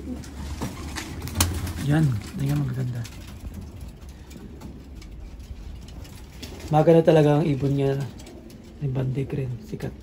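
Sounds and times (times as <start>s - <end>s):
pigeons cooing: 0.0s - 2.7s.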